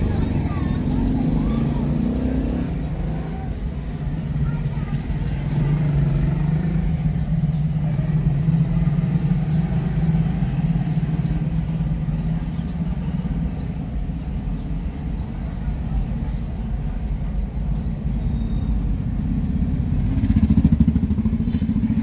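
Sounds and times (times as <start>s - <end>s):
small motorcycle engine passing: 0.0s - 3.6s, 19.3s - 22.0s
street noise: 0.0s - 22.0s.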